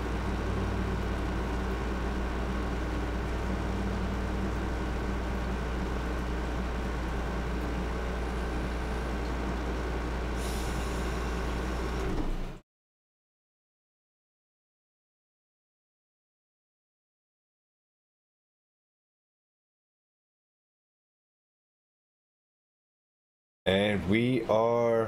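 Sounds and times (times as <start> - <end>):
low hum with higher tones: 0.0 - 12.6, 23.7 - 25.0.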